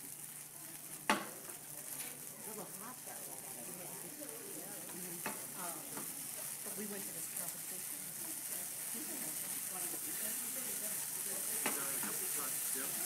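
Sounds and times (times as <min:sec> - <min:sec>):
alcohol sizzling in frying pan: 0:00.0 - 0:13.0.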